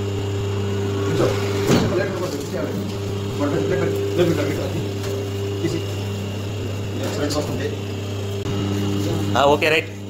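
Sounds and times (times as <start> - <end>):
machine electric hum: 0.0 - 10.0.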